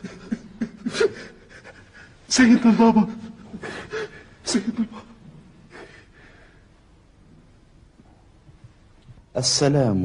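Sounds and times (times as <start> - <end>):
person gasping breaths: 5.7 - 6.7.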